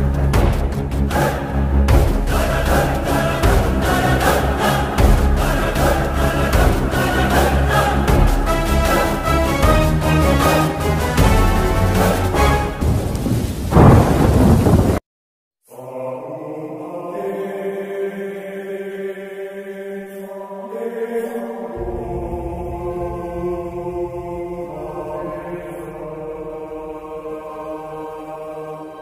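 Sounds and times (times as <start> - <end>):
thunder crash: 11.2 - 15.0, 21.8 - 25.2.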